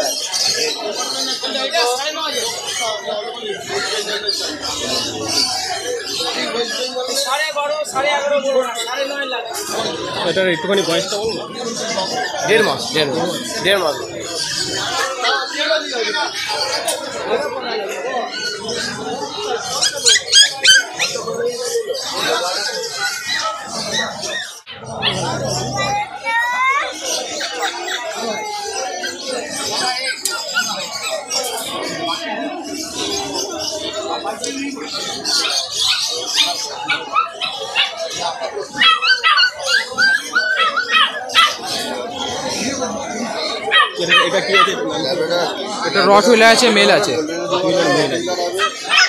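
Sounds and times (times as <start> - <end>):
background chatter: 0.0 - 49.0
murmur of people talking: 0.0 - 49.0
puppy whimpering: 19.8 - 21.2, 24.0 - 26.6
puppy whining and yelping: 19.8 - 21.3, 38.8 - 41.6.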